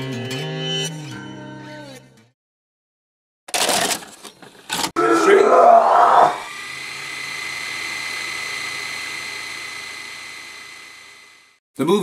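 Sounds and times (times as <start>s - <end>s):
motor whir with high whine: 6.2s - 11.6s.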